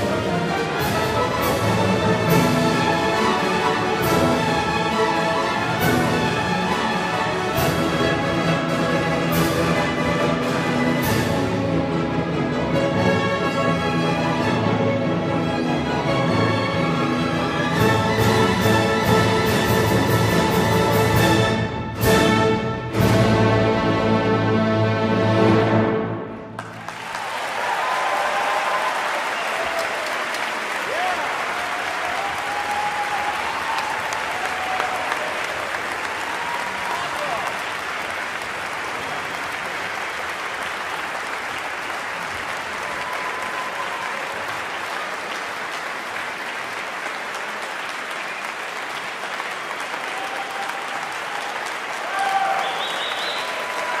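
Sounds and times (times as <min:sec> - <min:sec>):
audience applauding: 0:26.4 - 0:54.0
scattered cheers: 0:26.8 - 0:37.8, 0:42.6 - 0:45.0, 0:49.8 - 0:54.0.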